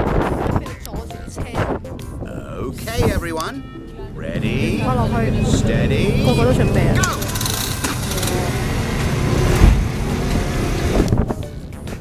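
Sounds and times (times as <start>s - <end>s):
low rumble: 1.4s - 11.3s
moped engines running: 4.2s - 11.2s
thump: 9.6s - 9.9s.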